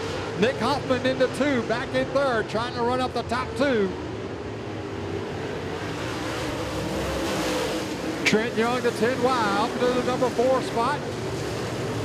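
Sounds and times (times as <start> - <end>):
race car engines running hard: 0.0 - 12.0.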